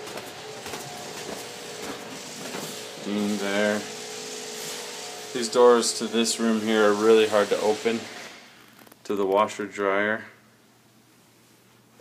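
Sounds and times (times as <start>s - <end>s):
footsteps on carpet: 0.0s - 3.0s
room hiss: 0.0s - 12.0s.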